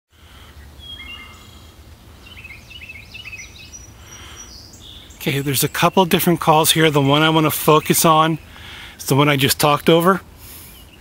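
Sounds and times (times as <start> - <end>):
songbirds calling: 0.1 - 11.0.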